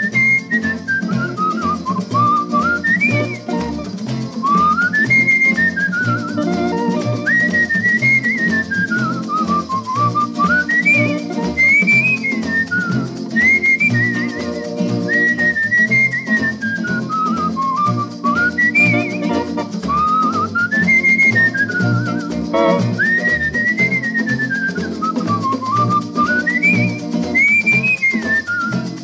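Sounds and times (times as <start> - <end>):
guitar: 0.0 - 29.0
rattling percussion: 0.0 - 29.0
whistled melody: 0.0 - 29.0.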